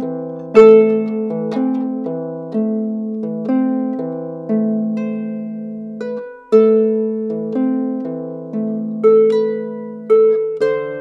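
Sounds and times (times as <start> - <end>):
harp music: 0.0 - 11.0.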